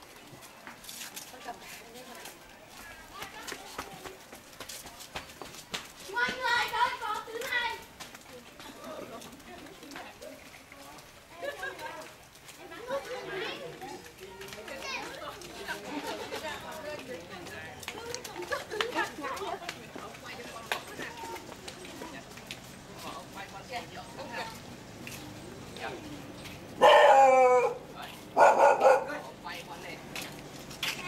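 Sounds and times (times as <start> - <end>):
children and adults talking: 0.0 - 31.0.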